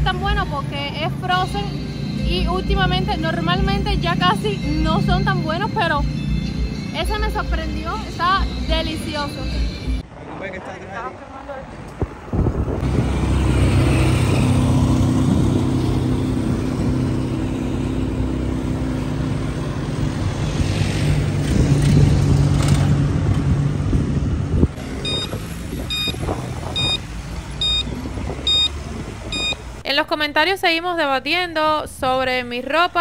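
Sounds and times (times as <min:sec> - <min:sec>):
short high electronic beeps: 0:25.0 - 0:25.3, 0:25.9 - 0:26.2, 0:26.8 - 0:27.0, 0:27.6 - 0:27.8, 0:28.5 - 0:28.7, 0:29.3 - 0:29.6.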